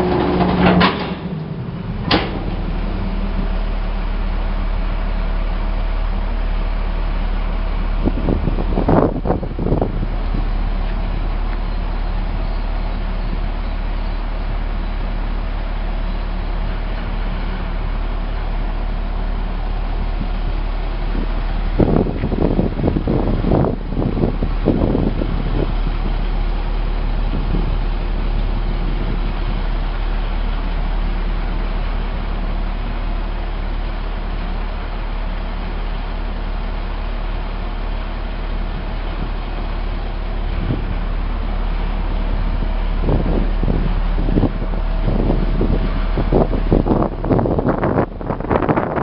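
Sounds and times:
irregular clatter: 0:00.0 - 0:02.8
diesel truck engine idling: 0:00.0 - 0:49.0.

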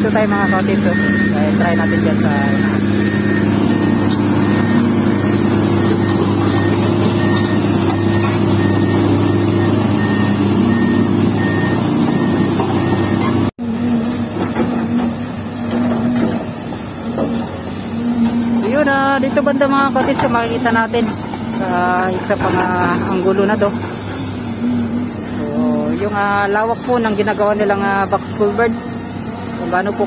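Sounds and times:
distant excavators working: 0:00.0 - 0:30.0
excavator diesel engine running: 0:00.0 - 0:30.0
repeating high beep: 0:00.1 - 0:13.4.

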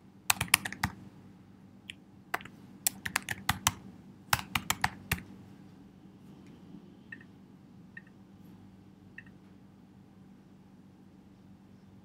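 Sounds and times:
computer keyboard typing: 0:00.3 - 0:01.0, 0:02.3 - 0:05.3.

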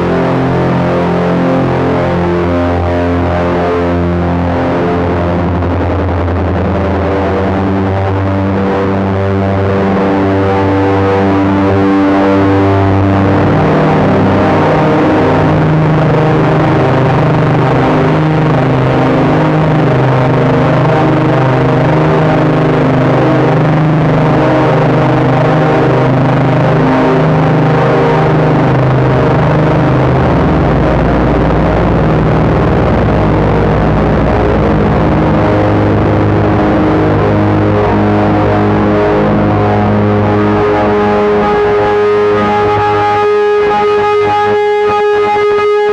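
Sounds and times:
distorted synthesizer drone: 0:00.0 - 0:45.9.

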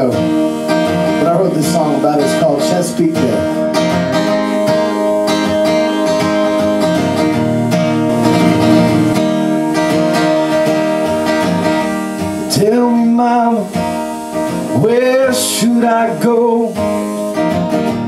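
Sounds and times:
acoustic guitar playing: 0:00.0 - 0:18.0
man singing: 0:01.1 - 0:03.6, 0:12.5 - 0:13.8, 0:14.7 - 0:17.0.

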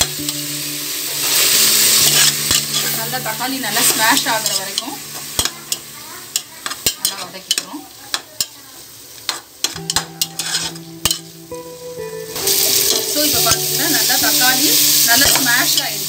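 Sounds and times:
oil sizzling: 0:00.0 - 0:16.0
metal spoon scraping a pot: 0:02.0 - 0:03.0, 0:09.3 - 0:11.2.

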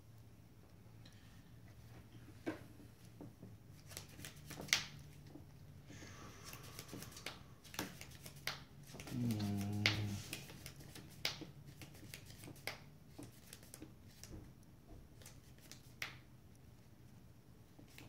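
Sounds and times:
person humming: 0:09.0 - 0:10.4.

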